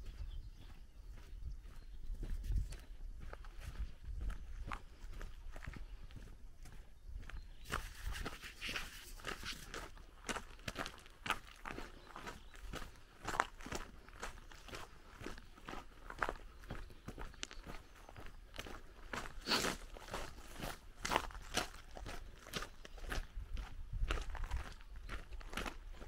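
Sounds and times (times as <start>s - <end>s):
footsteps on gravel: 0.1s - 26.0s.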